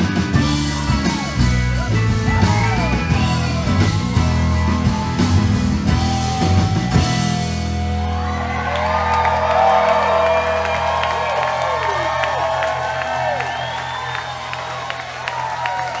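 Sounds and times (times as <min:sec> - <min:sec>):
crowd cheering and whooping: 0:00.0 - 0:16.0.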